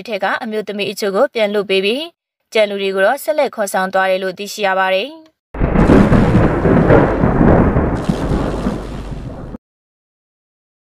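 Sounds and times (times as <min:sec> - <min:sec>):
rumbling crackling transition effect: 0:05.6 - 0:09.6.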